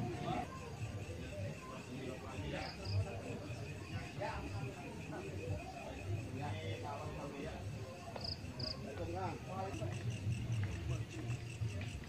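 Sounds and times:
crickets chirping: 0.0s - 12.0s
faint voices murmuring: 0.0s - 12.0s.

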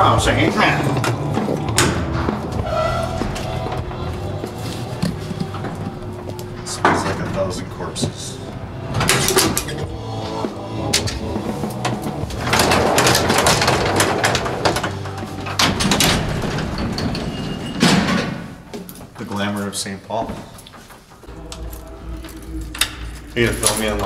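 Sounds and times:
metal gate rattling and scraping: 10.9s - 19.5s.

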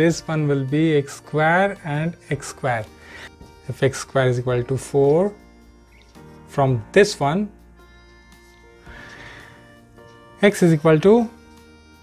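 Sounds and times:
soft background music: 0.0s - 12.0s
marker squeaking on whiteboard: 5.8s - 6.4s.

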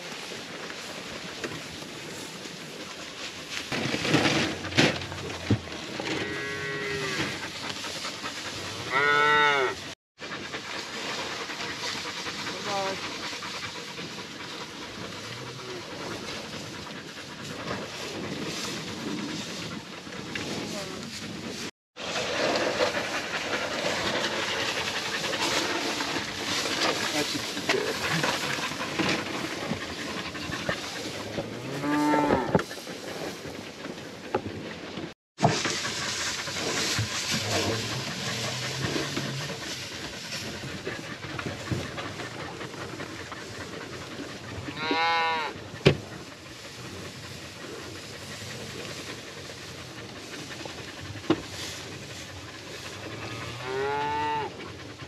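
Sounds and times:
outdoor noise: 0.0s - 55.0s
cattle mooing: 6.1s - 7.4s, 8.8s - 9.8s, 31.2s - 32.6s, 44.7s - 45.6s, 53.1s - 54.6s.

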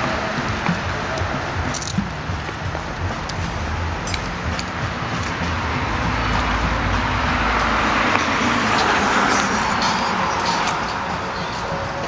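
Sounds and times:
car driving past: 0.0s - 12.0s.

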